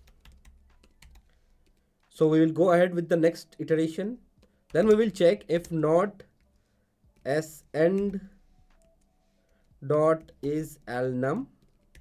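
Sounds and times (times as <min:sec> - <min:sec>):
faint keyboard typing: 0:00.0 - 0:02.2, 0:04.2 - 0:12.0.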